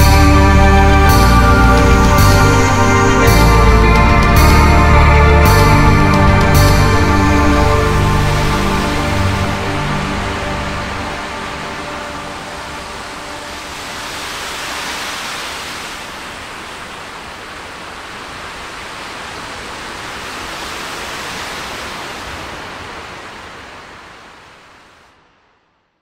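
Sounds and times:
held drone chord: 0.0 - 14.4
hiss-like noise wash: 0.0 - 26.0.

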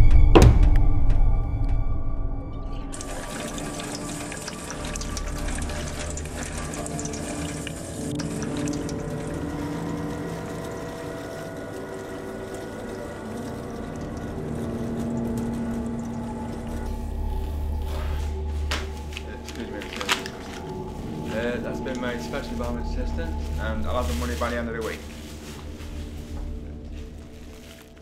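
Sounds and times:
low sustained drone: 0.0 - 27.9.

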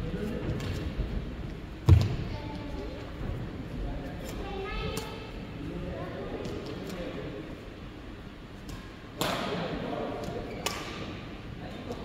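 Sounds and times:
racket hitting shuttlecock: 8.7 - 9.6, 10.2 - 11.1.

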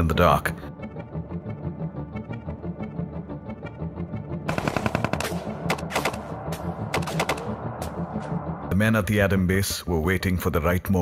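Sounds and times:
automatic gunfire: 4.5 - 6.3, 6.9 - 7.6.

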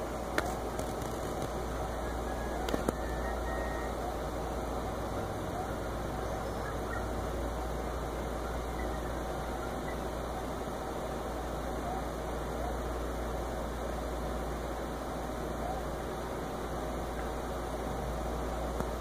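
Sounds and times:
even hiss: 0.0 - 19.0
faint clicks: 2.6 - 3.1.

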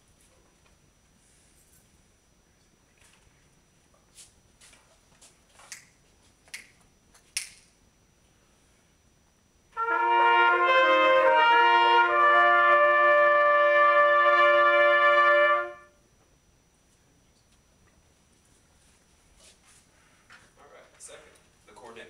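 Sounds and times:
trumpets playing a held chord: 9.7 - 16.0.

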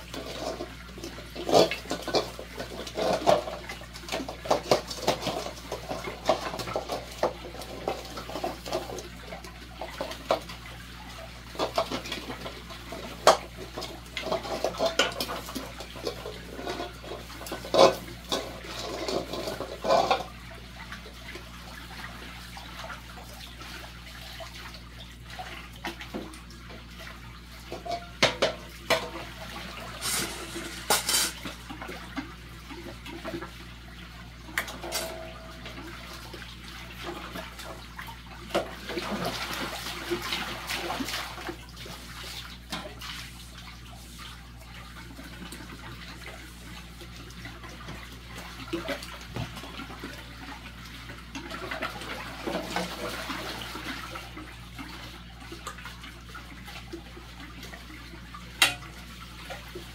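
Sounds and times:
water sloshing: 34.3 - 57.0
metal bowls clinking: 34.6 - 35.9.

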